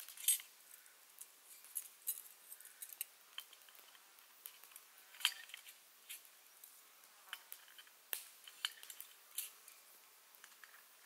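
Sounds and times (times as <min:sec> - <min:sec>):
wire grill grate clinking: 0:00.0 - 0:06.4, 0:07.3 - 0:10.9.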